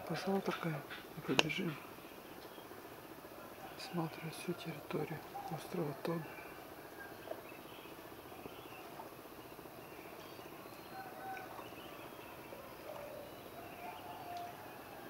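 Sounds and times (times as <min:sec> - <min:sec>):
faint bird calls: 0:00.0 - 0:15.0
faint steady hiss: 0:00.0 - 0:15.0.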